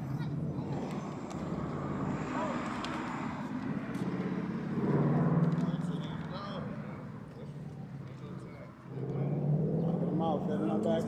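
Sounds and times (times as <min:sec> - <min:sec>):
faint people talking: 0:00.0 - 0:11.0
car driving past: 0:00.7 - 0:07.2.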